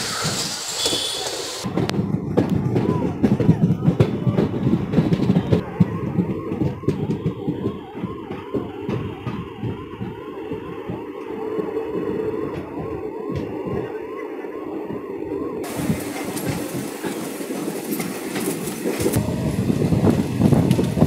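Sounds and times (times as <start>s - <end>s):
train wheels rattling: 0.0s - 21.0s
wind and wheel clatter: 0.0s - 21.0s
electronic whooping siren: 5.4s - 16.9s.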